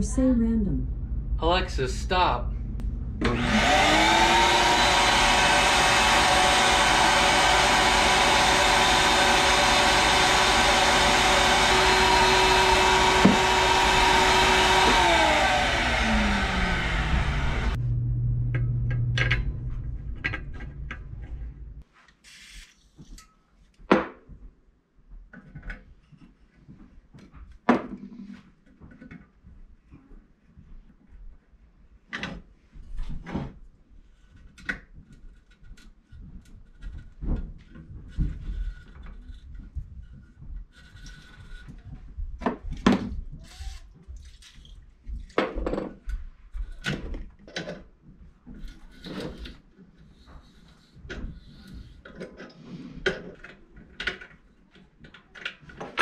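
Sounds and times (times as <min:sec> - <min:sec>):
shop vacuum whining: 0:02.8 - 0:21.7.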